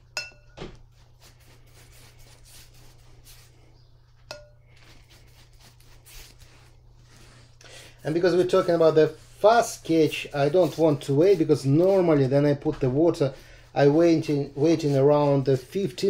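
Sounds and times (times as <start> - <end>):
brush clinking against glass jar: 0.1 - 0.6, 4.3 - 5.0
brush swishing in water: 0.9 - 3.6, 4.7 - 12.4, 13.7 - 16.0.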